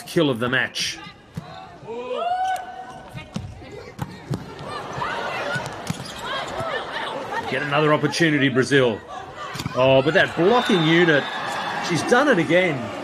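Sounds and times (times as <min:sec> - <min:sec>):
crowd noise: 0:00.0 - 0:13.0
shoes squeaking on court floor: 0:02.9 - 0:07.5.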